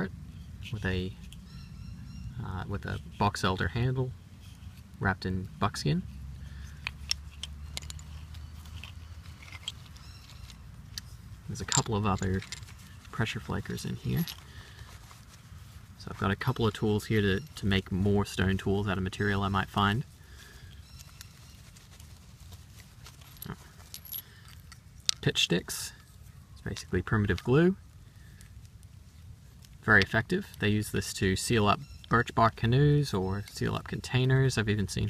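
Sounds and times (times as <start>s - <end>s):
low steady rumble: 0.0s - 35.0s
leather rustling: 6.1s - 24.9s
stone and bone tools clicking: 6.8s - 11.1s.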